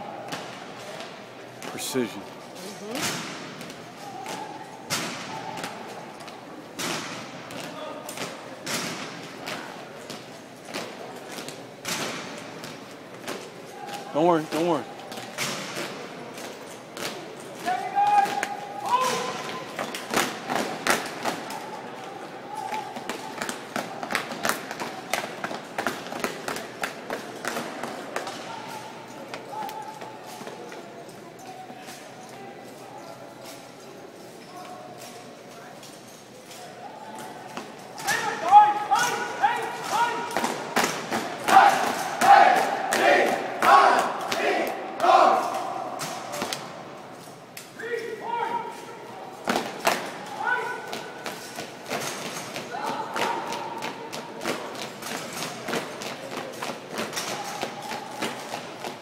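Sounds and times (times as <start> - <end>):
people shouting: 17.6 - 19.6, 41.4 - 46.0.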